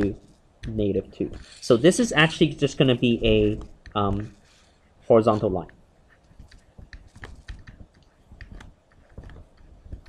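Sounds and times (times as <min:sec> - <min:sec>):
stylus tapping on a screen: 0:06.1 - 0:10.0.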